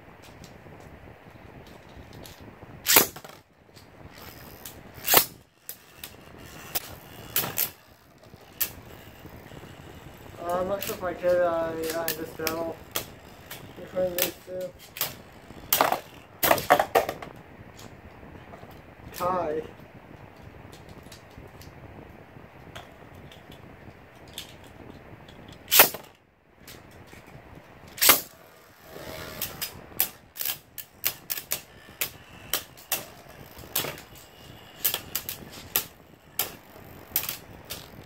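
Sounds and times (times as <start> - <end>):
sharp plastic clacks: 0.2 - 21.8, 22.6 - 38.0
spinning tops whirring: 2.8 - 17.4, 27.8 - 38.0
spinning tops clacking together: 4.1 - 17.3, 28.0 - 38.0.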